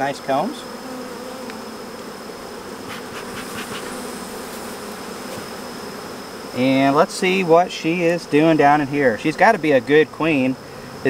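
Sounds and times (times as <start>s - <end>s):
honeybees buzzing: 0.0s - 11.0s.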